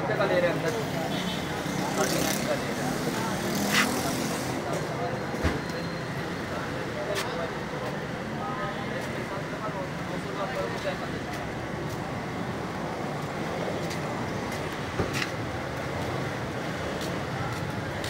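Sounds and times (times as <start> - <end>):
road traffic: 0.0 - 18.0.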